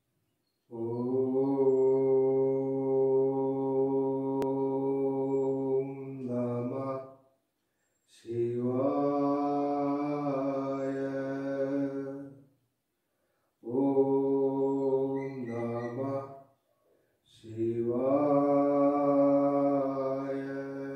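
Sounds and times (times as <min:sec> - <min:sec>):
low voice chanting: 0:00.7 - 0:07.2, 0:08.1 - 0:12.5, 0:13.6 - 0:16.5, 0:17.3 - 0:20.9.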